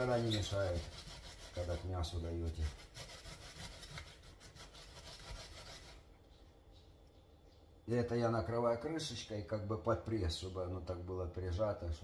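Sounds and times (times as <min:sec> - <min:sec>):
onion rasping on a grater: 0:00.0 - 0:06.1.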